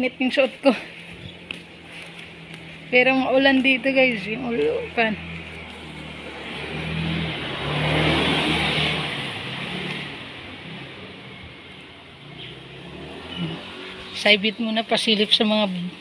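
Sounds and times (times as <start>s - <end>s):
vehicle passing: 0.0s - 16.0s.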